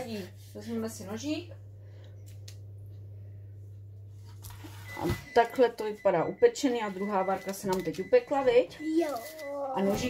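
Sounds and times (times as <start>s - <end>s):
low hum: 0.0s - 8.8s.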